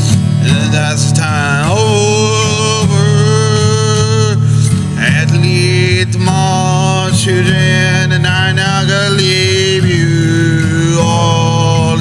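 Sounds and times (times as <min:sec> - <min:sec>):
acoustic guitar strumming: 0:00.0 - 0:12.0
man singing long held notes: 0:00.4 - 0:12.0.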